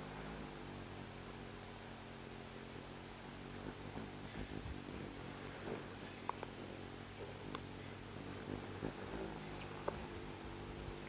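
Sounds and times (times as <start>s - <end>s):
hummingbird wings humming: 0.0s - 11.0s.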